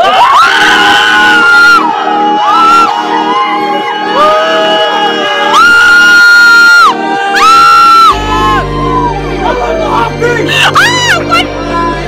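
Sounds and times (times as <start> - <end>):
young people screaming and whooping: 0.0 - 12.0
low pulsing background: 8.1 - 12.0.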